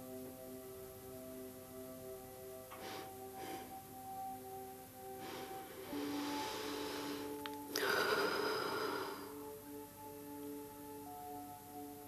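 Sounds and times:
soft ambient music: 0.0 - 12.0
person breathing out: 5.2 - 9.4.

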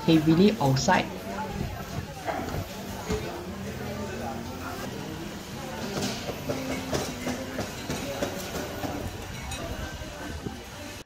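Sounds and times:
crockery clinking and clattering: 5.8 - 9.9.

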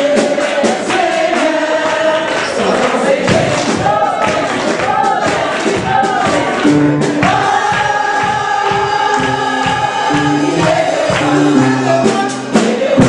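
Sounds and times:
choir singing gospel song: 0.0 - 13.0
instrumental accompaniment with bass: 0.0 - 13.0.

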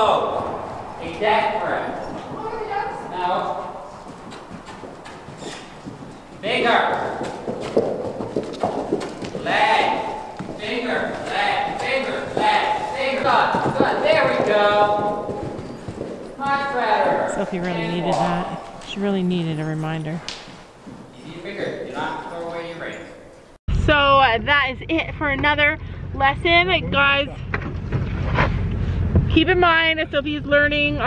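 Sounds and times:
horse hoofbeats on dirt: 0.2 - 22.3.

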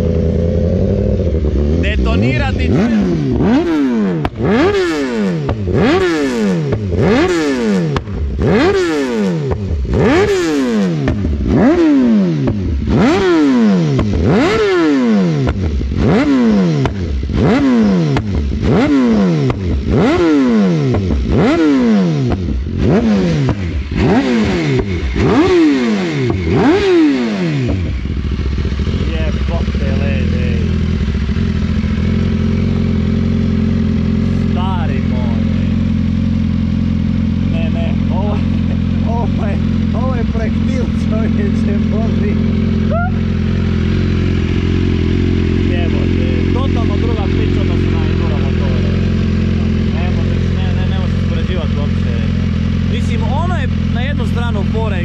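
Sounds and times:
motorcycle engine idling: 0.0 - 55.0
motorcycle engine revving: 0.0 - 55.0
person speaking: 1.8 - 3.2.

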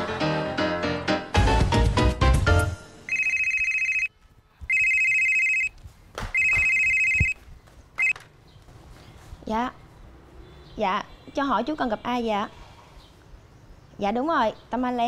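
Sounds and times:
electronic telephone ringing: 3.1 - 4.1, 4.7 - 5.7, 6.4 - 7.4.

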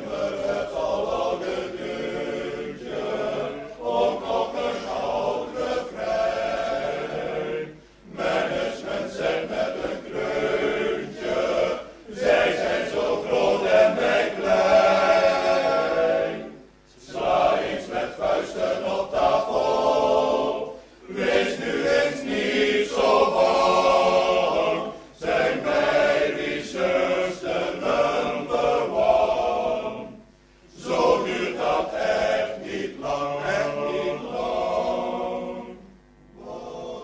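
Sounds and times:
choir singing: 0.0 - 37.0.

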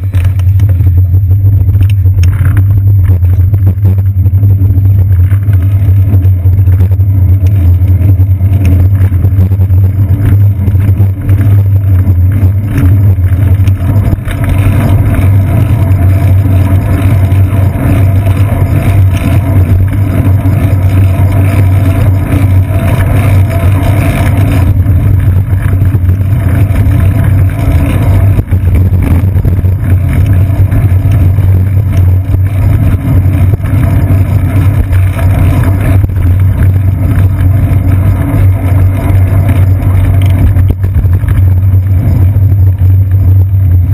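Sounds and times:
road vibration rumble: 0.0 - 43.9
wind: 0.0 - 43.9.

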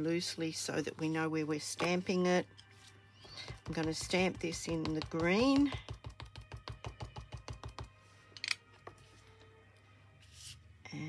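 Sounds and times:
ink pad tapping rubber stamp: 3.4 - 7.9.

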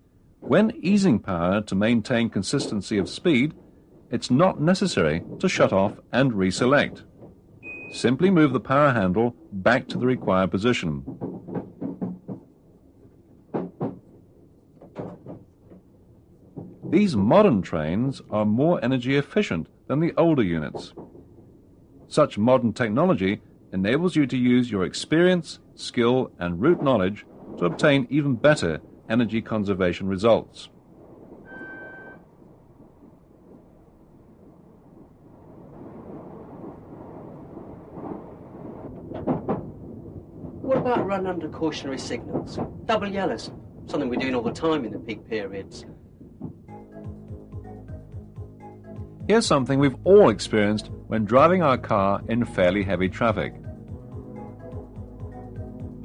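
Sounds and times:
train running rumble: 0.0 - 30.9, 37.6 - 48.4, 49.0 - 56.0
man speaking: 0.5 - 7.0, 7.9 - 11.1, 16.9 - 21.0, 22.1 - 30.7, 49.3 - 53.6
short electronic tone: 31.5 - 32.2.

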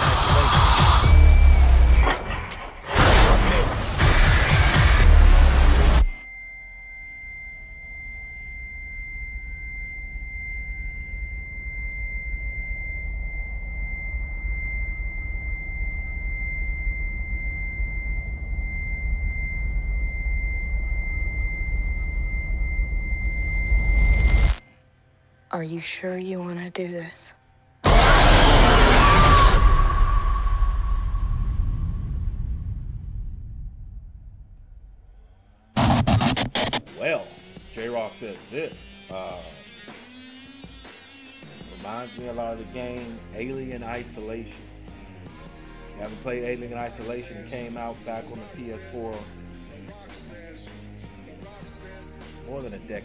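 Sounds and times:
faint ringing tone: 6.2 - 24.2
deep rumble: 28.2 - 35.2
digital glitch noise: 35.8 - 36.8.

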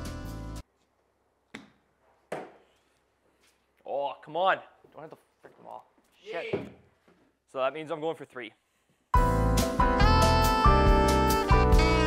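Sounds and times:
ball knocking against hard object: 1.5 - 2.6.

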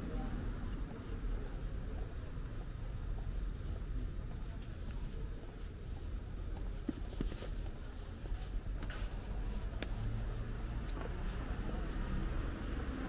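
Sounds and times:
low rumble of street ambience: 0.0 - 13.0.

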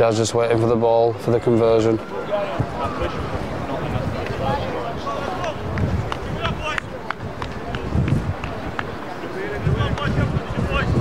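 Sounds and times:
faint voices: 0.0 - 11.0
wind rumbling on microphone: 2.4 - 11.0.

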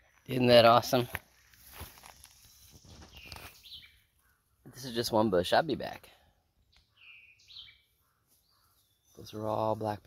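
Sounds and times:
faint bird calls: 2.4 - 5.0, 6.2 - 9.5.

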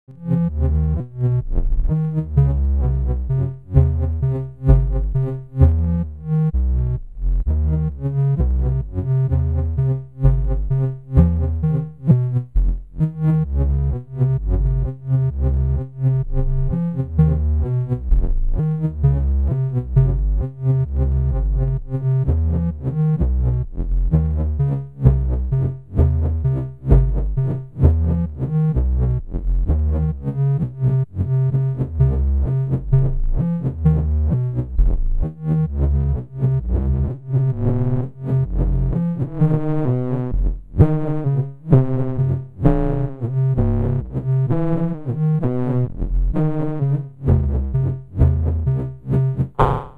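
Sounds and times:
pulsing synth bass: 0.1 - 49.9
synthesizer rhythmic note sequence: 0.1 - 49.9.

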